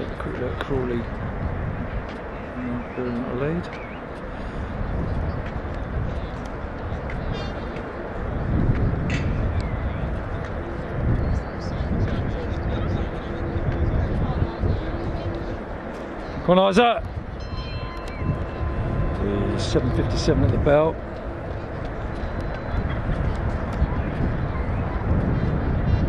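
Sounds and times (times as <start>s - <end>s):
steady low rumble: 0.0s - 26.0s
faint distant voices: 9.4s - 26.0s.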